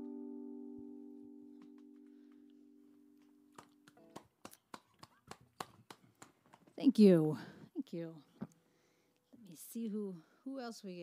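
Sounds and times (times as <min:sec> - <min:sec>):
acoustic guitar chord ringing: 0:00.0 - 0:04.1.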